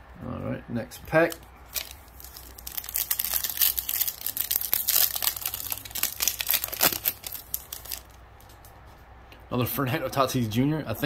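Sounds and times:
plastic wrapper tearing and crinkling: 0:01.2 - 0:08.7.

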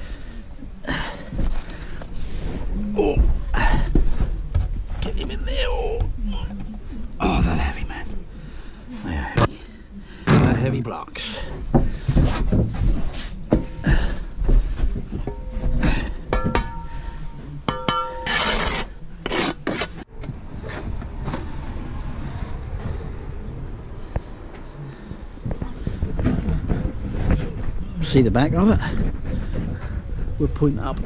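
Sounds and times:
background noise: 0:00.0 - 0:31.0
ringing metal taps: 0:15.1 - 0:18.4
trowel scraping mortar: 0:18.2 - 0:20.0.

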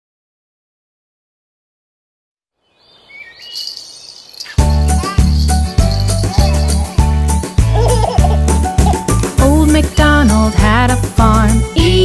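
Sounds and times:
bird chirps: 0:02.6 - 0:06.7
high cricket-like buzz: 0:02.9 - 0:06.6.

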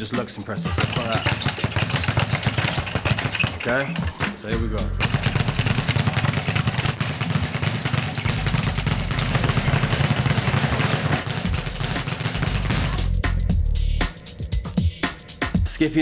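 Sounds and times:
speed bag rattling: 0:00.6 - 0:13.1
music with heavy bass: 0:04.1 - 0:06.2, 0:08.1 - 0:16.0.

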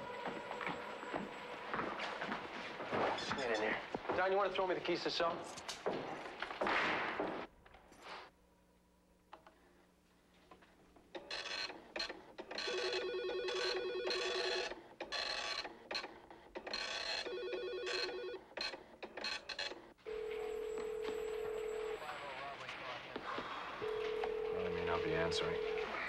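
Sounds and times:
telephone dial tone: 0:11.2 - 0:15.7, 0:16.7 - 0:22.0, 0:23.8 - 0:26.0
telephone bell ringing: 0:12.6 - 0:15.6, 0:16.7 - 0:18.5, 0:19.3 - 0:22.4, 0:23.8 - 0:26.0.

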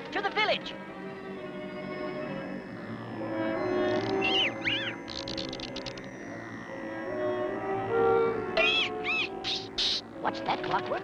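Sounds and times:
cartoon background music: 0:03.2 - 0:11.0
squeaky sound effects: 0:03.7 - 0:06.2, 0:08.6 - 0:10.0
rattle of clicks: 0:05.1 - 0:06.1.

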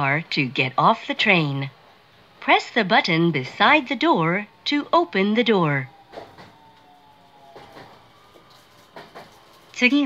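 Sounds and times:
thin steady whining tone: 0:00.0 - 0:10.0
train cabin interior noise: 0:03.4 - 0:10.0
soft knocks: 0:07.5 - 0:08.0, 0:08.8 - 0:09.4.

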